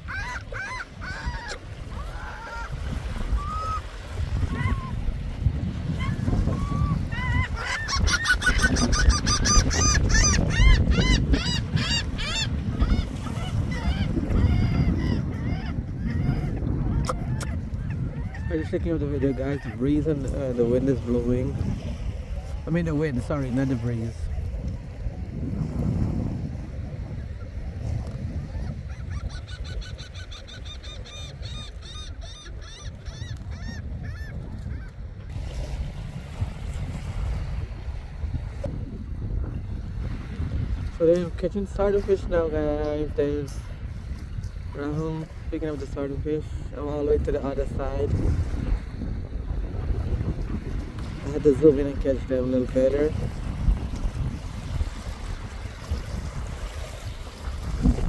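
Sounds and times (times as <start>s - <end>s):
gulls calling: 0.0s - 21.6s, 28.3s - 35.3s
wind rumbling on microphone: 0.0s - 58.0s.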